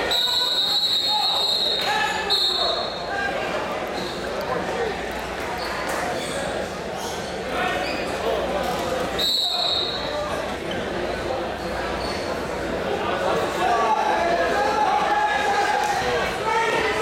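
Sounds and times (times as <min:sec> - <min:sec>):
crowd shouting and talking: 0:00.0 - 0:17.0.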